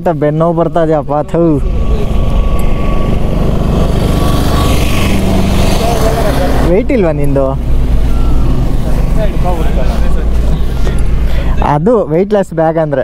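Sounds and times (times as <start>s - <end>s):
motorcycle engine running: 0.5s - 11.3s.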